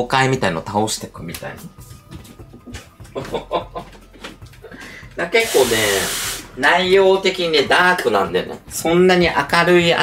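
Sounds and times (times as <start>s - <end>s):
woman laughing: 3.2s - 4.0s.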